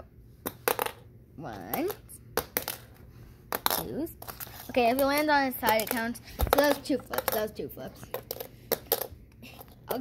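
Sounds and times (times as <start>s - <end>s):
child speaking: 3.8s - 8.1s.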